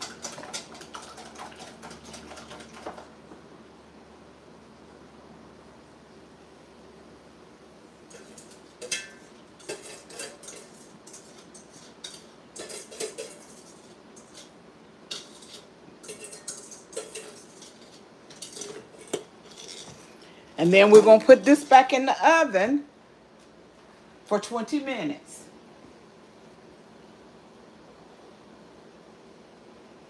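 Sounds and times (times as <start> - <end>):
utensil scraping metal bowl: 8.1 - 22.0.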